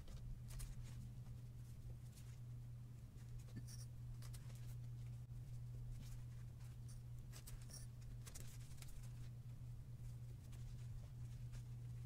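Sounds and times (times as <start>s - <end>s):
fabric scratching and rustling: 3.2s - 12.0s.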